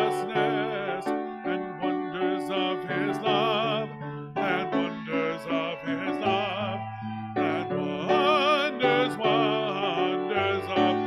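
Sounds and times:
instrumental accompaniment: 0.0s - 11.0s
solo singer with vibrato: 0.0s - 11.0s.

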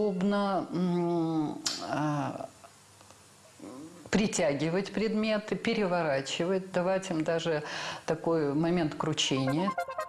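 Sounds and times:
woman speaking: 0.0s - 2.6s, 3.6s - 9.9s.

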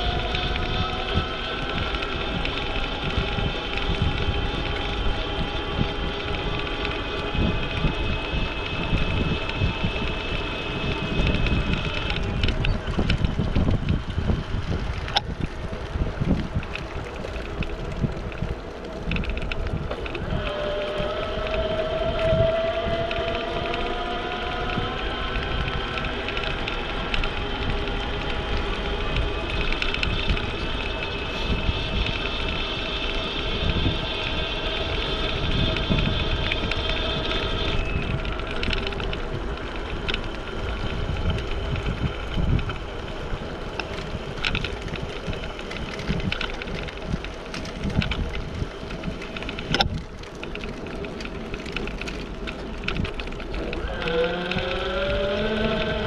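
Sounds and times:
higher whine: 0.0s - 56.0s
thin mechanical whine: 0.0s - 56.0s
wind rumbling on microphone: 0.0s - 56.0s
light clicks and rattles: 11.2s - 20.3s.

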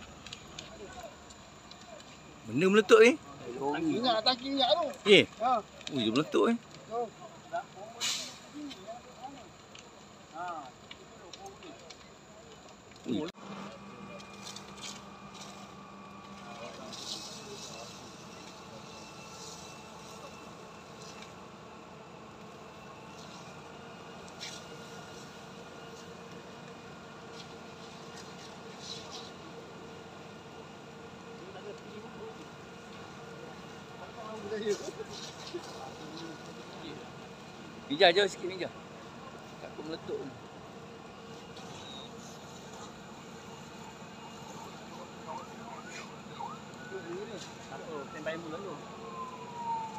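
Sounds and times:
distant voices: 0.0s - 49.9s
fire engine pump engine hum: 0.0s - 49.9s.

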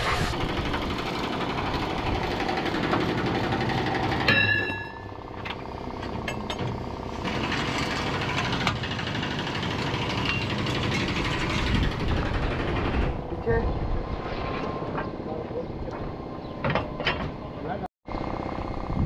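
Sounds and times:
rapid mechanical rattle: 0.0s - 4.3s, 5.1s - 13.4s.

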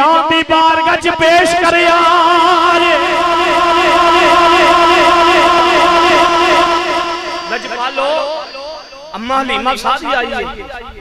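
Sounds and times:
man singing a sustained note: 1.6s - 10.9s.

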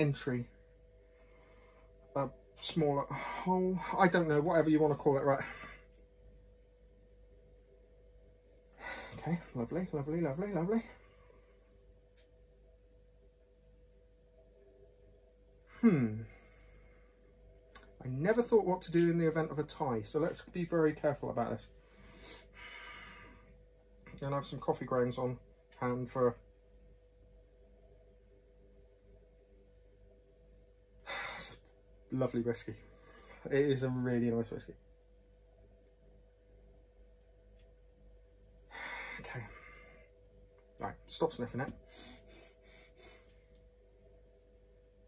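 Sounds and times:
faint breaths through nose: 21.8s - 23.6s
person sniffing: 41.9s - 43.4s.

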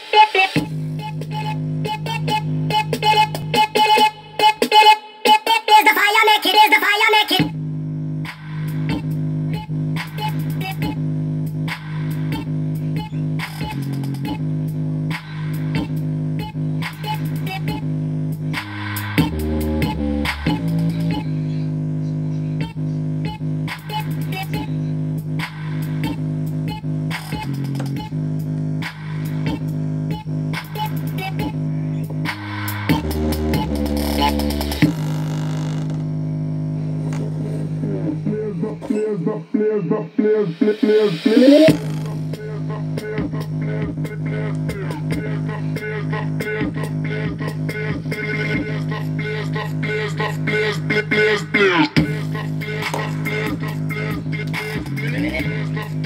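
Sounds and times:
bass-heavy electronic music: 0.0s - 5.0s, 7.3s - 56.0s
chopped vocal sample: 18.6s - 56.0s.

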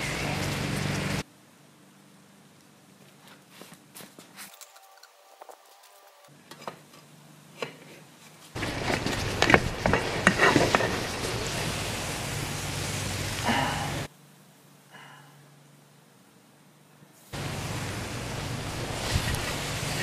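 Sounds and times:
syrup boiling and crackling: 8.5s - 14.1s, 17.3s - 20.0s
hissing sizzle with pops: 9.3s - 14.1s, 17.2s - 20.0s.

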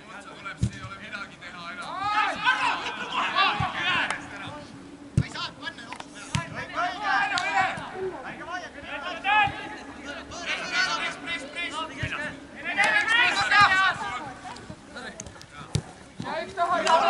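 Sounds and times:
players shouting and calling: 0.0s - 17.0s.

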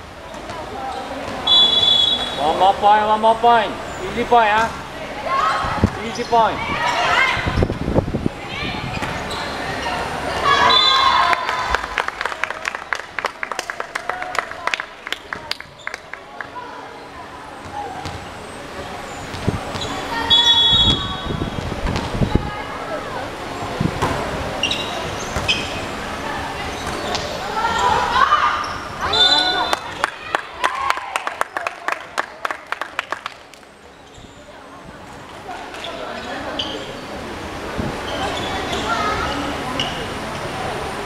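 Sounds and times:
people shouting and cheering: 9.6s - 12.7s, 27.4s - 32.2s.

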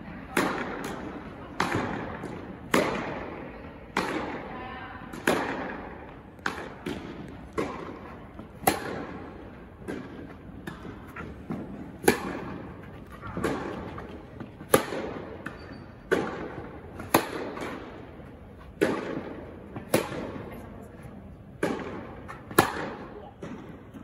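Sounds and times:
tennis ball bouncing on court: 0.3s - 4.5s, 5.1s - 24.0s
tennis ball struck by rackets: 0.3s - 4.5s, 5.1s - 24.0s.

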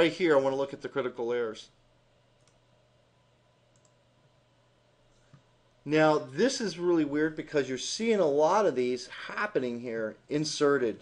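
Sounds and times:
faint room hum: 0.0s - 11.0s
computer mouse clicks: 2.4s - 2.6s, 3.7s - 4.0s.

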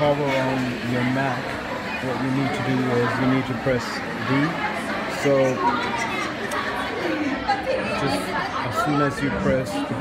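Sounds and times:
people talking: 0.0s - 10.0s
steady room noise: 0.0s - 10.0s.

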